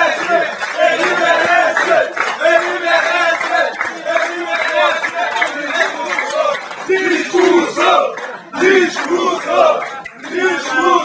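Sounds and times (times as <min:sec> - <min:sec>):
men shouting rhythmic chant: 0:00.0 - 0:11.0.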